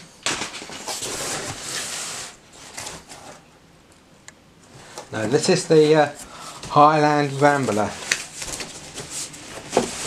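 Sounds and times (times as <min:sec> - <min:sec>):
cardboard and packing rustling: 0:00.3 - 0:03.4, 0:05.1 - 0:10.0.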